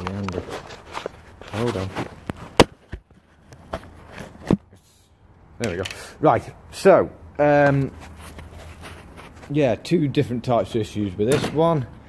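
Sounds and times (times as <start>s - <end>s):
soft knocks and scuffs: 0.0s - 4.7s, 7.7s - 9.7s.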